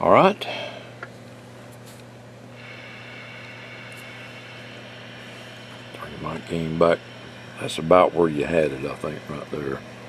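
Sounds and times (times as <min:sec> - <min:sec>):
electrical hum: 0:00.0 - 0:10.0
radio receiver hiss: 0:02.6 - 0:10.0.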